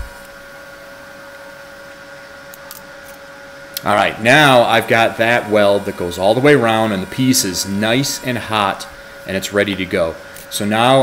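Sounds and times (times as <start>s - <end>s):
welding machine humming with hiss: 0.0s - 11.0s.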